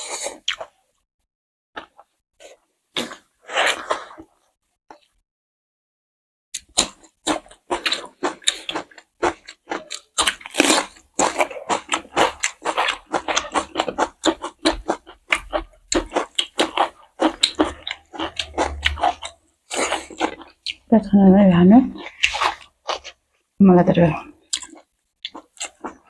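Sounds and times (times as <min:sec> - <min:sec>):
people chewing and smacking: 0:00.0 - 0:01.0, 0:01.8 - 0:04.3, 0:06.6 - 0:21.1, 0:22.0 - 0:23.6, 0:24.4 - 0:26.0.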